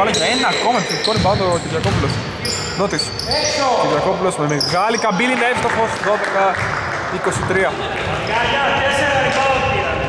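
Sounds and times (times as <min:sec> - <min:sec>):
voices in echoing hall: 0:00.0 - 0:10.0
basketball bouncing on wooden court: 0:01.1 - 0:02.3.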